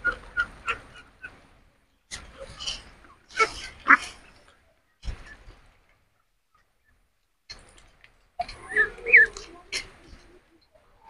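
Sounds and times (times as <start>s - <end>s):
ducklings peeping: 0.0s - 1.4s.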